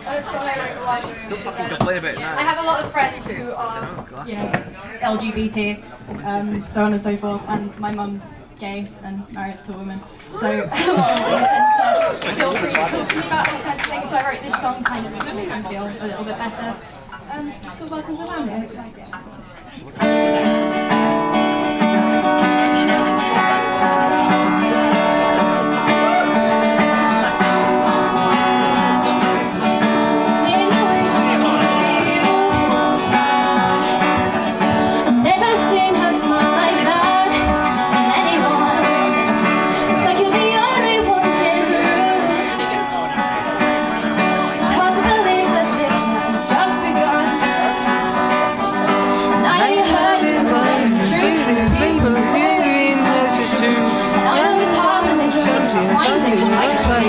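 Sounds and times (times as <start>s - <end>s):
acoustic guitar strumming: 20.0s - 57.0s
woman singing: 30.2s - 42.7s, 44.5s - 57.0s.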